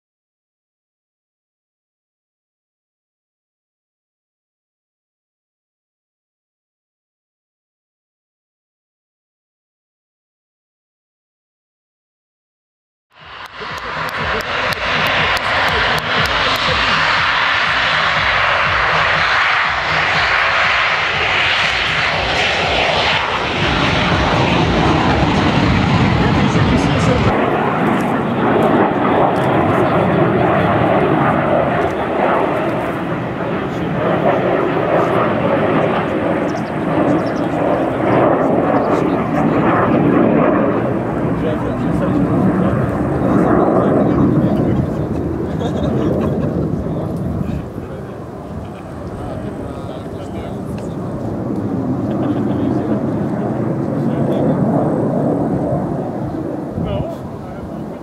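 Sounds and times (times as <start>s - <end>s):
jet engines roaring: 13.1s - 58.0s
jets flying overhead: 13.1s - 58.0s.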